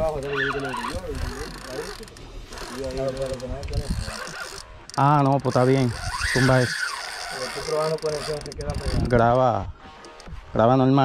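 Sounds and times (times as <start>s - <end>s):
water noise: 0.0s - 10.6s
wind: 0.0s - 11.0s.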